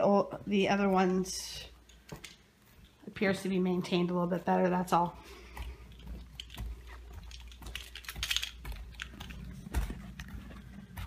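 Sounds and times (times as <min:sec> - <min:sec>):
footsteps: 0:00.0 - 0:11.0.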